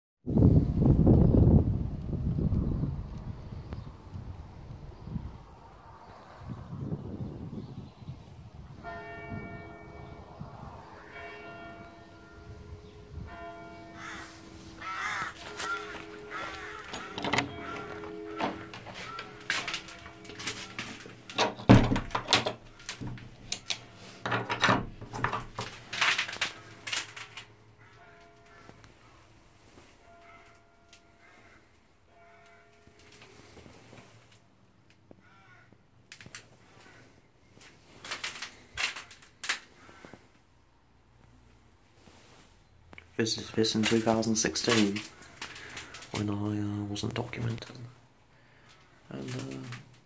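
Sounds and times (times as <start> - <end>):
church bell striking: 8.8 - 33.4
sharp knocks and clatter: 15.2 - 27.5.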